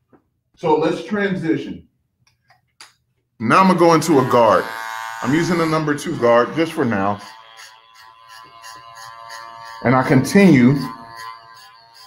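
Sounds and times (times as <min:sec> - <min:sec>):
hair clipper humming: 0:03.5 - 0:12.0.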